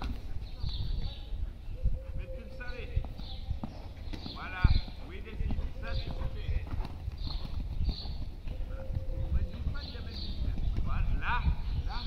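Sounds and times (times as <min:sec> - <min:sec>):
horse hoofbeats on sand: 0:02.6 - 0:12.0.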